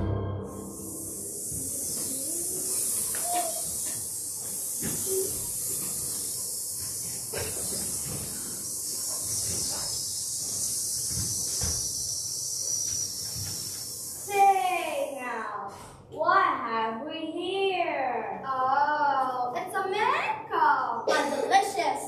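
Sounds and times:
children hissing like a snake: 0.6 - 16.0.

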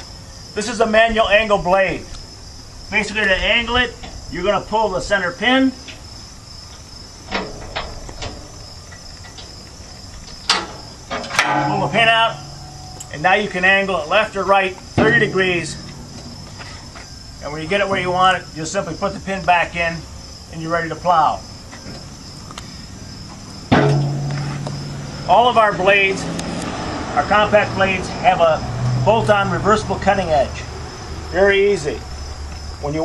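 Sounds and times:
insects chirring: 0.0 - 33.0
tractor diesel engine running: 7.3 - 18.8.

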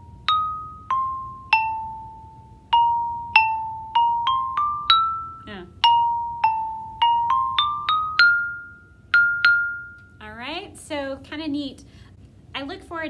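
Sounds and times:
xylophone melody: 0.0 - 10.2.

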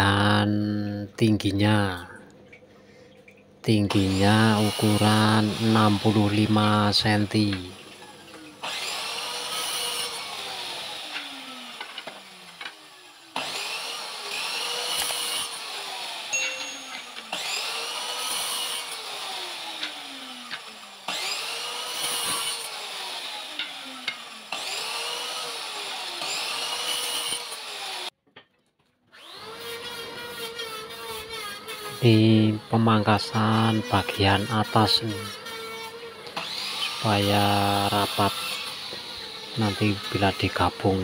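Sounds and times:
miter saw cutting wood: 3.7 - 28.2, 29.1 - 41.0.

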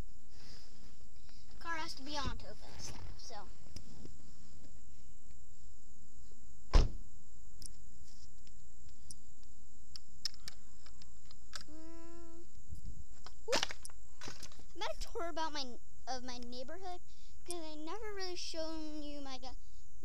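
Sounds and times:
car door shutting: 6.7 - 7.0.

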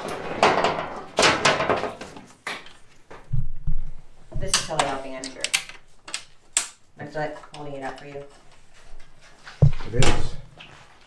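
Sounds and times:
panel rustling and scraping: 0.0 - 2.3.

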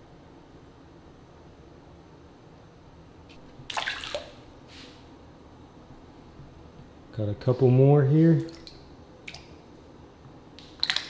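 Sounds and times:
water sloshing: 3.3 - 4.5, 10.8 - 11.0
water splashing: 3.4 - 4.5, 8.4 - 9.5, 10.7 - 11.0.

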